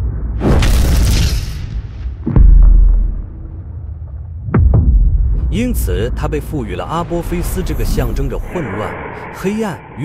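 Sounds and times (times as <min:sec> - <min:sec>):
deep rumbling boom: 0:00.0 - 0:09.9.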